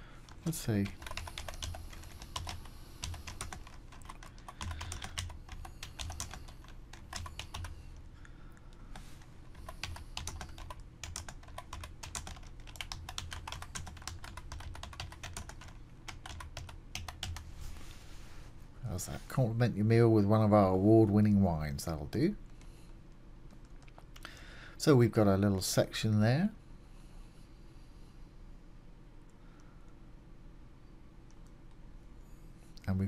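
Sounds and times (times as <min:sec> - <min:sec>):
computer keyboard typing: 0:00.2 - 0:07.8, 0:09.0 - 0:17.5.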